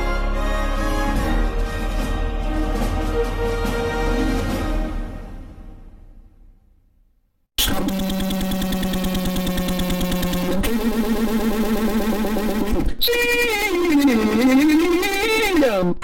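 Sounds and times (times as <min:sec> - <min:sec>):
synthesized yell: 0:07.6 - 0:16.0.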